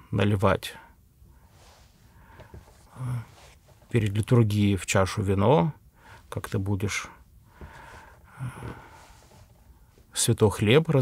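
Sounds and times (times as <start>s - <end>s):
man breathing: 1.3s - 3.6s, 5.9s - 6.3s, 7.4s - 10.1s.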